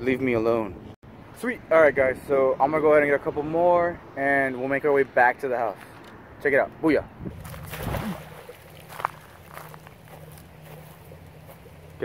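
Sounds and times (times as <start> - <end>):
dip net splashing in water: 7.4 - 9.9.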